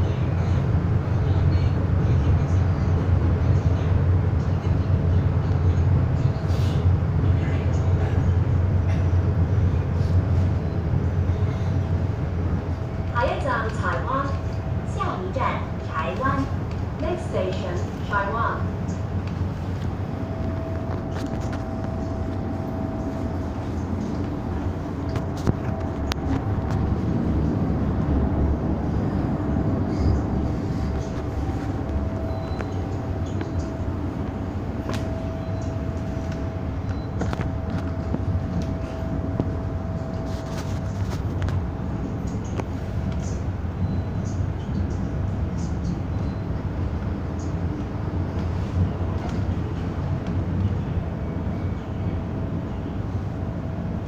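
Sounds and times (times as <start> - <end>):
train wheels rumbling: 0.0 - 54.0
thin steady whine: 10.0 - 54.0.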